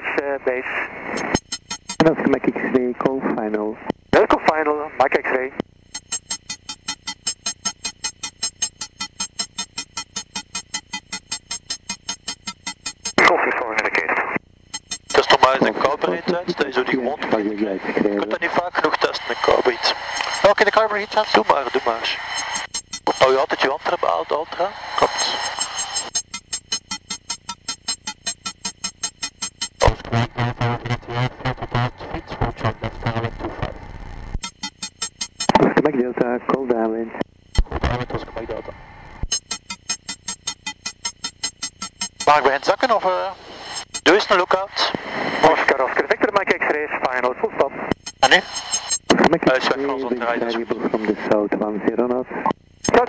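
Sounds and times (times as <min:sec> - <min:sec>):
pulsing radio interference: 0:00.1 - 0:02.5, 0:05.9 - 0:33.8, 0:39.3 - 0:51.4, 0:52.4 - 0:53.0.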